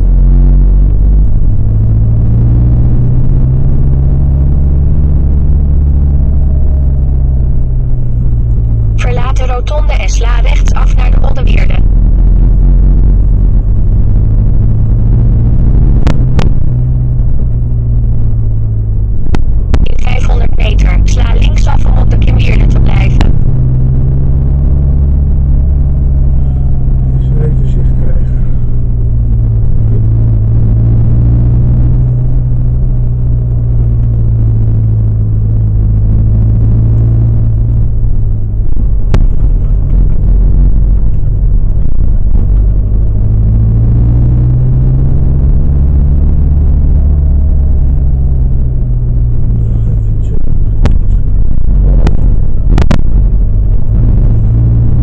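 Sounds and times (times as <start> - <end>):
car engine and road noise: 0.0 - 55.0.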